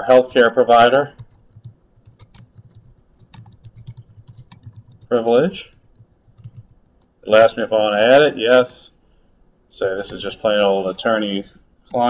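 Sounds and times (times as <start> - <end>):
computer keyboard key clicks: 1.2 - 7.1.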